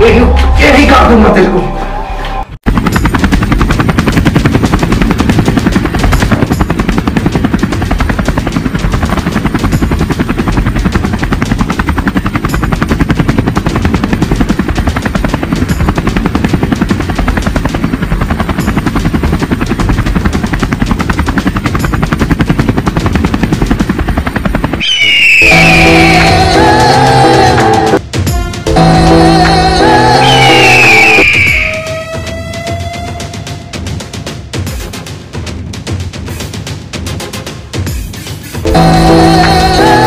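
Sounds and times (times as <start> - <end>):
helicopter engine running: 2.6 - 28.0, 28.7 - 35.0, 37.2 - 40.0
helicopter rotor beating: 2.6 - 40.0.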